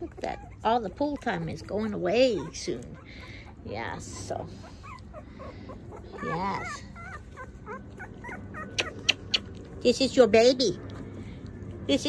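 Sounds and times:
puppies whimpering: 0:00.0 - 0:11.0.

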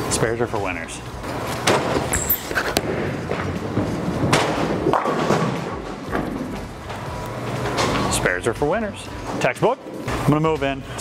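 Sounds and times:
bowling pins crashing: 0:01.6 - 0:07.0
bowling ball thud and roll: 0:01.6 - 0:08.1.

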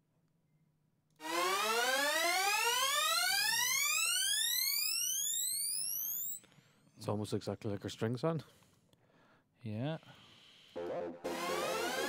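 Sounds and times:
synth sweep rising in pitch: 0:01.2 - 0:06.4, 0:10.8 - 0:12.0.

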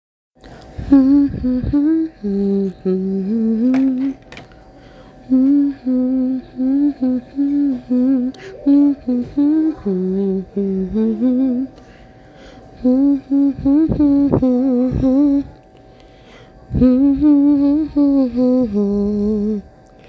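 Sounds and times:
woman humming a tune: 0:00.7 - 0:04.2, 0:05.2 - 0:11.8, 0:12.8 - 0:15.6, 0:16.7 - 0:19.7.

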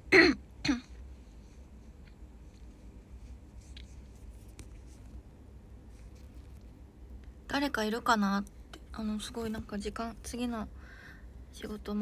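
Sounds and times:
woman clearing her throat: 0:00.1 - 0:01.0.

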